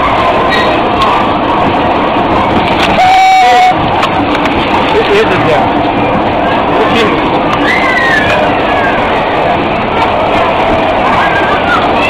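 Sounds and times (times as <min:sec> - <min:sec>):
bumper cars rolling: 0:00.0 - 0:12.0.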